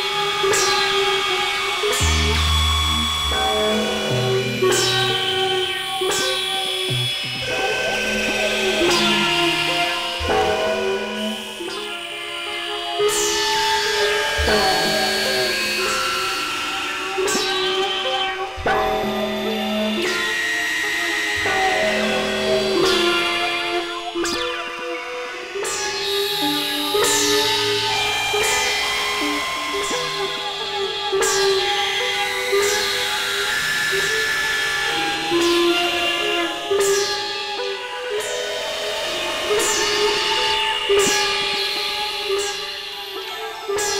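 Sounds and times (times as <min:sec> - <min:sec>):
experimental synthesizer music: 0:00.0 - 0:43.9
electronic synthesizer drone chords: 0:01.2 - 0:12.6.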